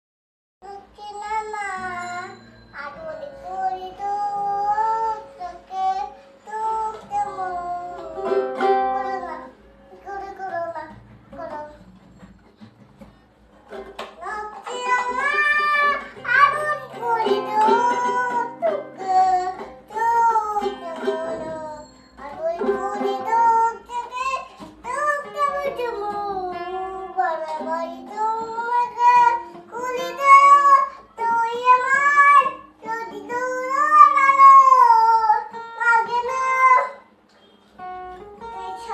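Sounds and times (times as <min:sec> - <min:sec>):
girl singing held notes: 0:00.6 - 0:11.9, 0:14.1 - 0:37.2, 0:37.8 - 0:38.9.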